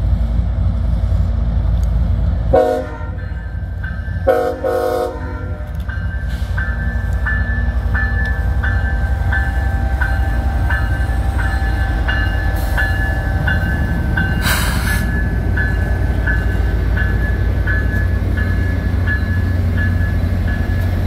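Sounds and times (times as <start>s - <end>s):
diesel locomotive engine rumbling: 0.0s - 21.0s
locomotive bell ringing: 3.0s - 21.0s.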